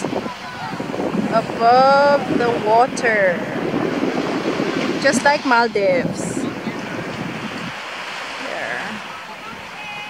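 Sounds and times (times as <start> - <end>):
small waves washing on shore: 0.0 - 10.0
wind buffeting microphone: 0.0 - 10.0.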